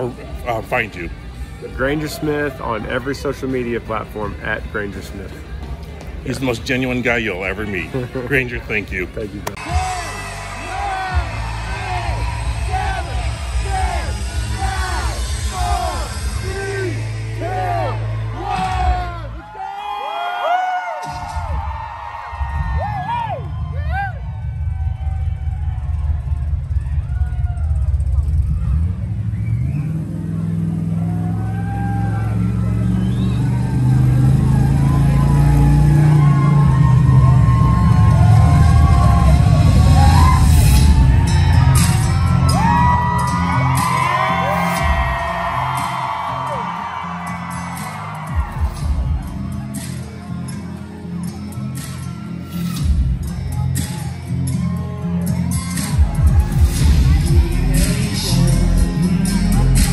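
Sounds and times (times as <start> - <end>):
concert crowd cheering: 8.2 - 59.9
high whoops: 9.6 - 29.8, 30.9 - 49.9
low bass rumble: 22.5 - 47.0, 55.9 - 59.9.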